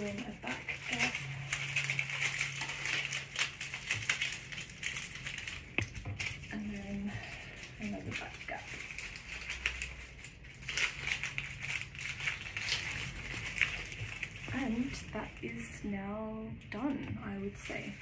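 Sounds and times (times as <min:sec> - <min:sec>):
dry stems and leaves rustling: 0:00.0 - 0:18.0.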